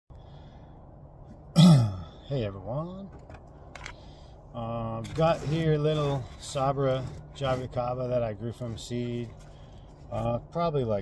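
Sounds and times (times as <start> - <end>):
faint background noise: 0.1 - 11.0
man clearing his throat: 1.5 - 2.2.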